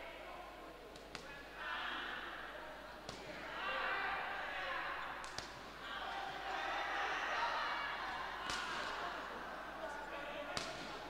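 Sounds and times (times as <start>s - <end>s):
voices shouting in a hall: 0.0s - 11.0s.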